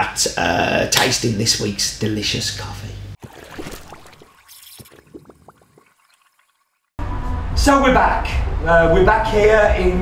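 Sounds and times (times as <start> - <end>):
liquid trickling and gurgling: 3.2 - 7.0.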